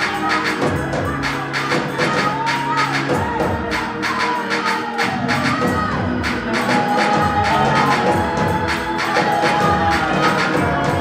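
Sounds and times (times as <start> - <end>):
voices singing and shouting: 0.0 - 11.0.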